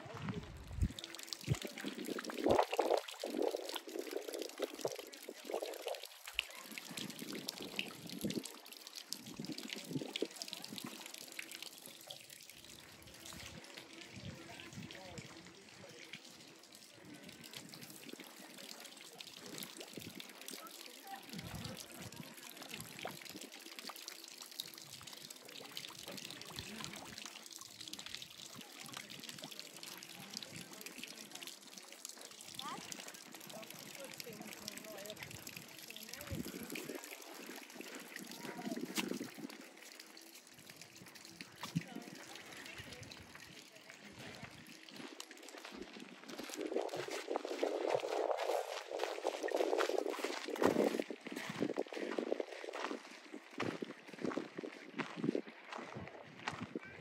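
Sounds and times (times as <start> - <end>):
water trickling and splashing: 0.0 - 57.0.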